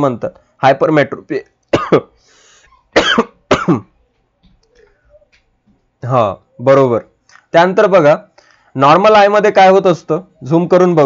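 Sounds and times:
man coughing: 1.7 - 2.2, 2.9 - 3.9.

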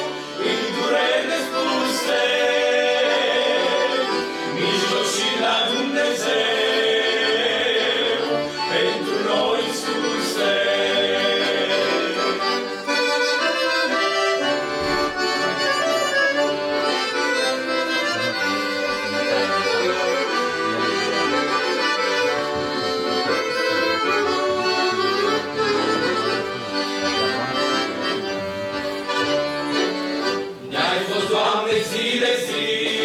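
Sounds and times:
accordions playing: 0.0 - 33.0.

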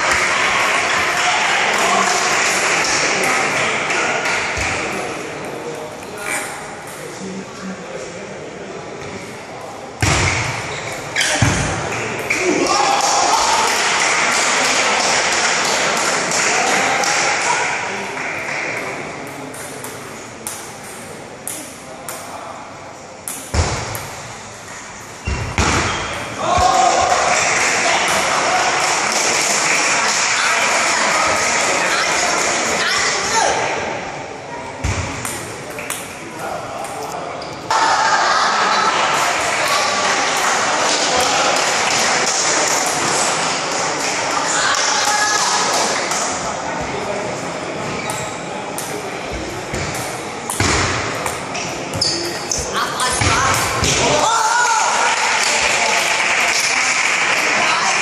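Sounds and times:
spectators cheering and talking: 0.0 - 58.0.

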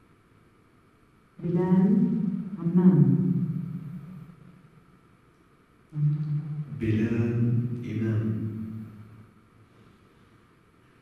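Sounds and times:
man's drawn-out voice: 6.7 - 8.5.

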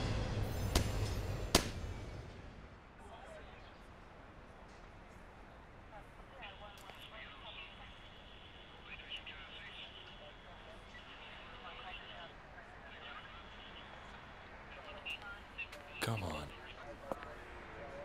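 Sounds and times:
faint indistinct voices: 2.9 - 18.0.

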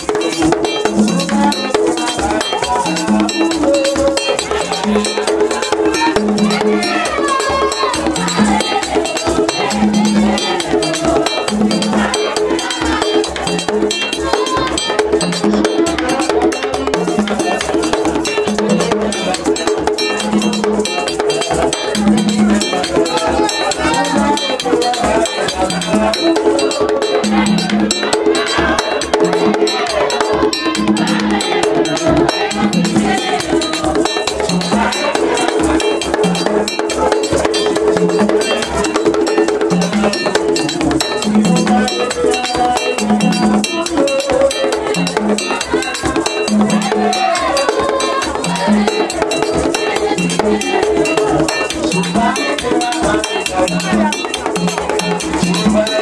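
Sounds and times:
clanging metal bell: 0.0 - 56.0
fast dense percussion: 0.0 - 56.0
hand drums: 0.0 - 56.0
held pitched tones: 0.0 - 56.0
voices singing: 0.0 - 56.0.

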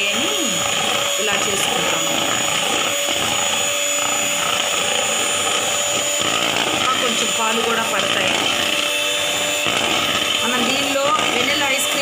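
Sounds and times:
electric hand mixer whisking: 0.0 - 12.0.

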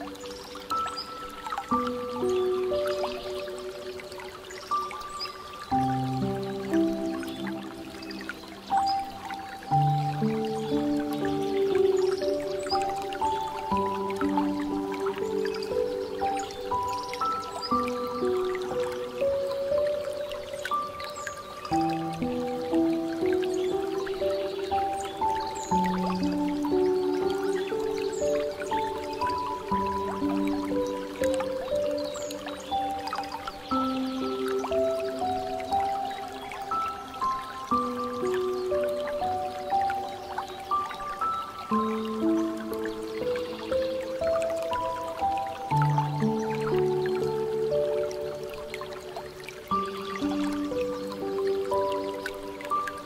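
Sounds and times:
slow soft piano music: 0.0 - 53.0
water trickling and dripping: 0.0 - 53.0.

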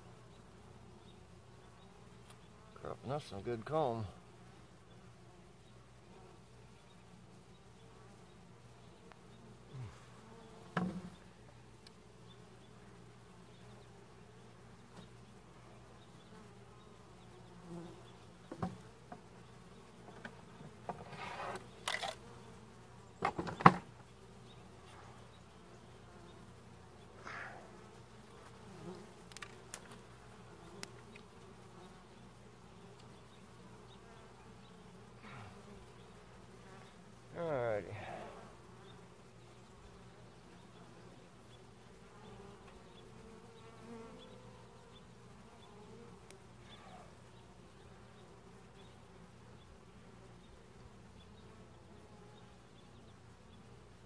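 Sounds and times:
bees buzzing: 0.0 - 54.0
knocks on wooden hive boxes: 10.6 - 11.1, 18.4 - 19.2, 23.2 - 23.9.

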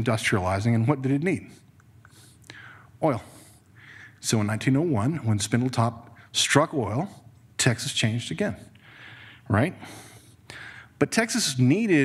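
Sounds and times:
soft breath noise: 1.4 - 4.2, 8.6 - 11.0.

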